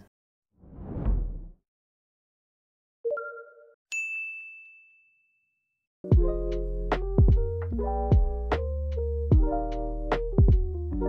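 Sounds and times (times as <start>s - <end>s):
bright bell ding: 4.0s - 5.3s.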